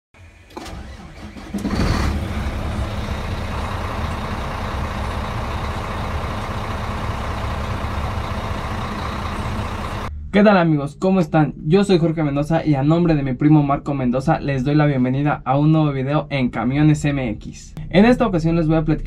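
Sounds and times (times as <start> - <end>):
truck engine starting and idling: 0.1 - 10.3.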